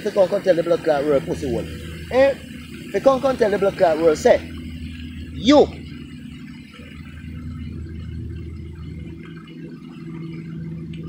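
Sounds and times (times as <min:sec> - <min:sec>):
higher steady tone: 0:00.0 - 0:11.0
low mechanical hum: 0:00.0 - 0:11.0.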